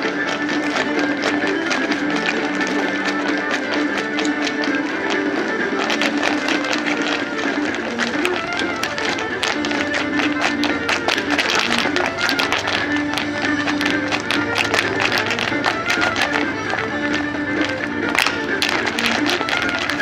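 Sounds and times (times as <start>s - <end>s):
dance shoes tapping on pavement: 0.0s - 20.0s
irish dance music: 0.0s - 20.0s.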